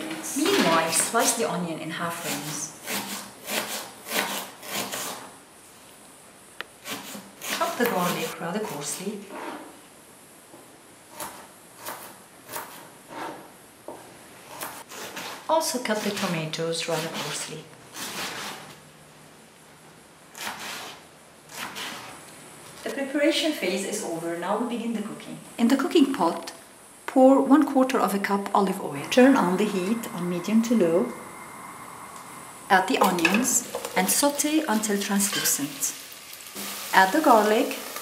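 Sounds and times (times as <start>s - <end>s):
knife slicing onion on board: 2.2s - 5.3s, 6.8s - 9.0s, 11.1s - 13.4s, 14.5s - 18.7s, 20.4s - 22.1s
knife slicing tomatoes on board: 20.4s - 22.1s.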